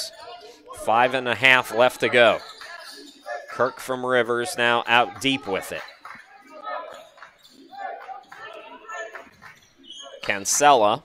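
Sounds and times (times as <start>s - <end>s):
background voices: 0.0s - 9.4s.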